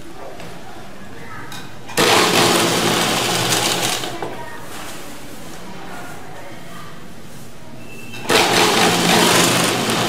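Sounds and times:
sewing machine motor hum: 2.0s - 4.1s, 8.3s - 10.0s.

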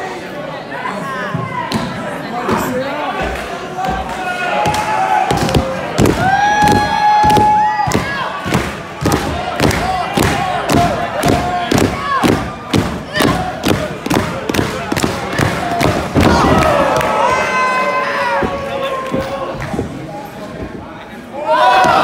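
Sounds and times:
crowd noise: 0.0s - 22.0s.

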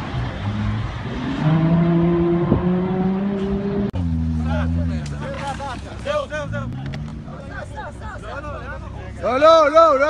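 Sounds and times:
car engine revving: 0.0s - 7.7s.

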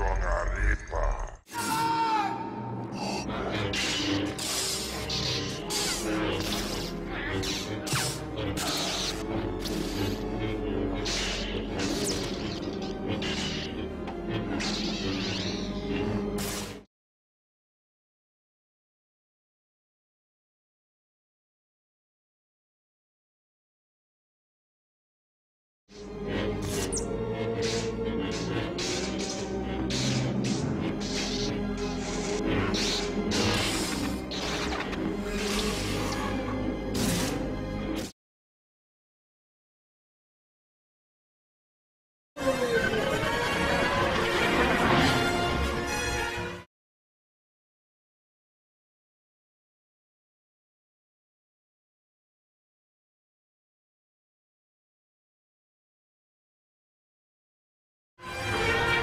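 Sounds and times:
lightsaber swings and clashes: 3.6s - 10.2s, 10.9s - 13.8s, 26.6s - 38.1s
orchestral score: 42.4s - 46.7s, 58.2s - 59.0s.

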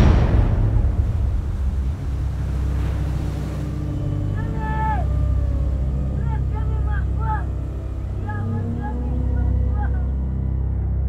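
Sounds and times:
deep low rumble: 0.0s - 11.0s.

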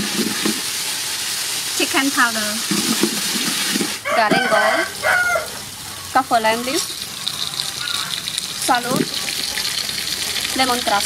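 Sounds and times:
garlic sizzling in hot oil: 0.0s - 11.0s
chicken calling: 4.0s - 6.1s, 7.3s - 8.2s.

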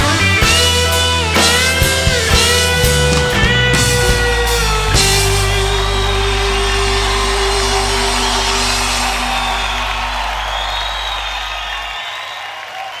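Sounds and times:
deep bass note: 0.8s - 11.9s
live band sustained chord: 1.0s - 12.0s
crowd cheering and whooping: 2.8s - 13.0s.

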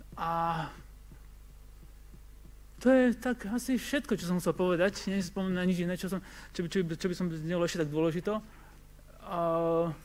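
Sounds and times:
faint electrical hum: 0.0s - 10.0s
man speaking: 2.8s - 8.5s, 9.2s - 10.0s.

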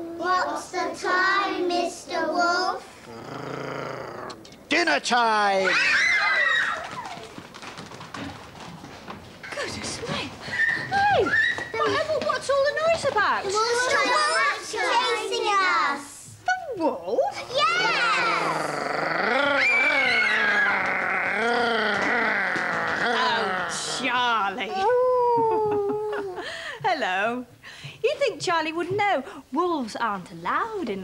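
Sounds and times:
children's footsteps on paving: 5.7s - 14.1s, 19.6s - 24.2s
faint voices: 17.4s - 26.5s
person imitating wolf howls: 18.2s - 24.1s.

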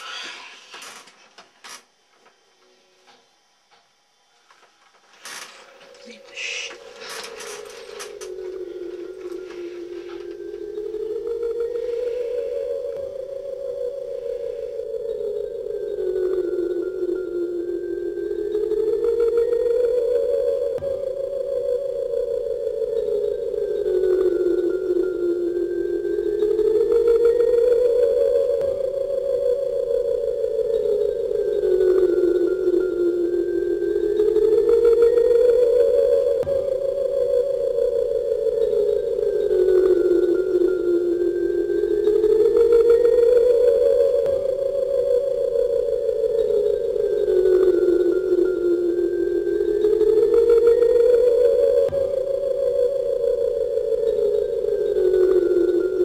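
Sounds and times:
sliding electronic tone: 0.0s - 3.0s, 4.8s - 16.7s.

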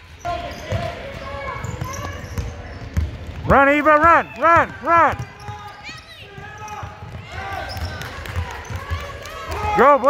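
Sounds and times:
players running on hardwood floor: 0.8s - 10.0s.

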